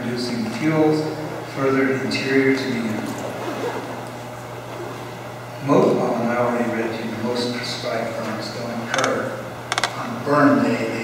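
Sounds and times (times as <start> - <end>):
man talking: 0.0 - 3.2, 5.6 - 9.4
sharp clicks: 8.9 - 10.0.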